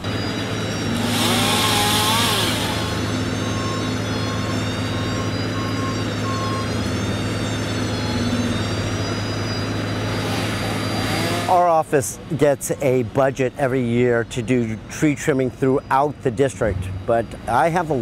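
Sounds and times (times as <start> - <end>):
truck engines humming: 0.0 - 18.0.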